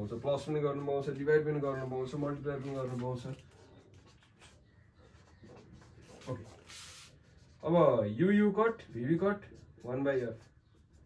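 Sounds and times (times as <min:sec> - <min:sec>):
marker scratching on whiteboard: 0:01.6 - 0:11.0.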